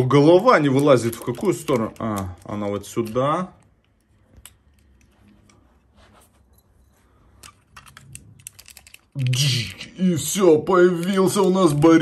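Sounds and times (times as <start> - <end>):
person speaking: 0.0 - 3.8, 9.1 - 12.0
plastic toy parts clicking: 0.2 - 5.1, 7.4 - 12.0.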